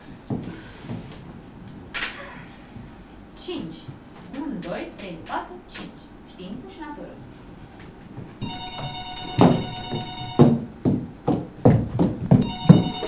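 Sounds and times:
telephone ringing with fast trill: 0:08.4 - 0:10.6, 0:12.4 - 0:13.0.

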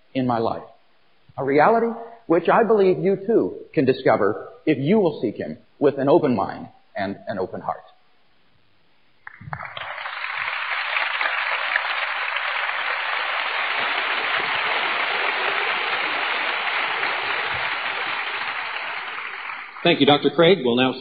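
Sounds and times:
audience applauding: 0:09.2 - 0:20.7.

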